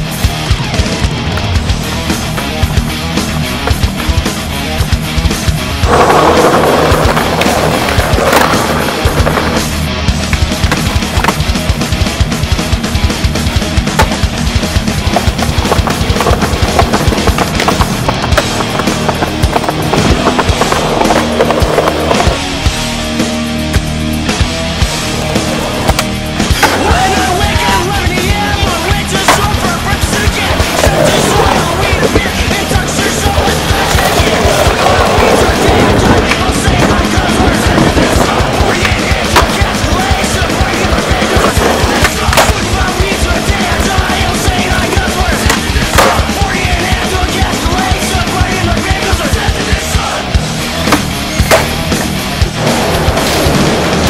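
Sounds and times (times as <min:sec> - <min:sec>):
rock music with drums: 0:00.0 - 0:54.0
skateboard wheels rolling on stone: 0:00.0 - 0:54.0.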